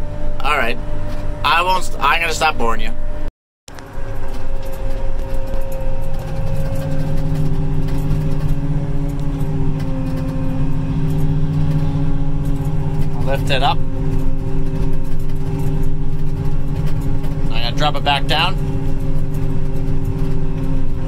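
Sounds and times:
diesel engine running: 0.0 - 21.0.

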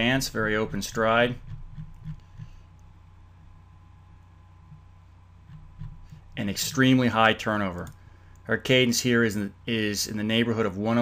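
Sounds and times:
low hum: 0.0 - 10.8
faint background hiss: 0.0 - 11.0.

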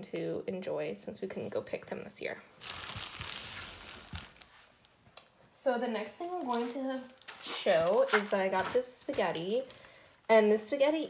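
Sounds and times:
plastic bag crinkling: 2.6 - 4.9, 6.2 - 9.9.

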